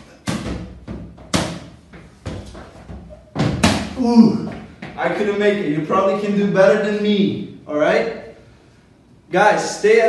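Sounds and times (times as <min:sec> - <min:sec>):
balloons hit by hand: 0:00.2 - 0:04.0.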